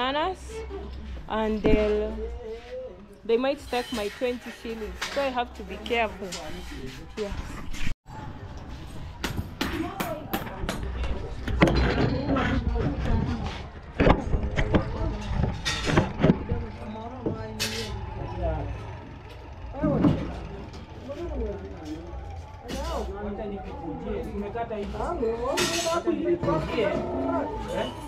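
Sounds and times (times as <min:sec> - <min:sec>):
road traffic rumble: 0:12.2 - 0:26.0.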